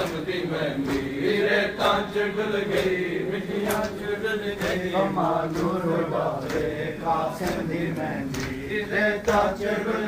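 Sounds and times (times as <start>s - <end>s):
men chanting in unison: 0.0s - 10.0s
hands slapping chests: 0.8s - 1.2s, 2.7s - 4.0s, 5.5s - 6.8s, 7.4s - 9.6s.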